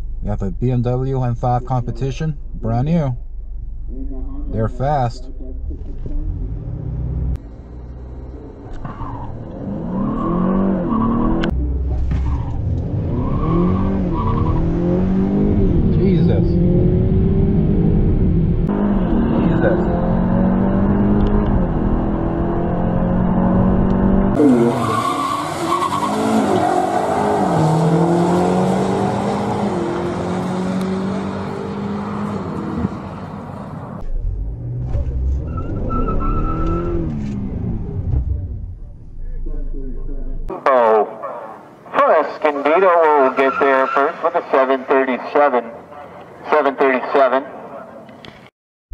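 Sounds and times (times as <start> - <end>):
car engine accelerating: 0.0 - 41.0
cars launching side by side: 5.8 - 38.9.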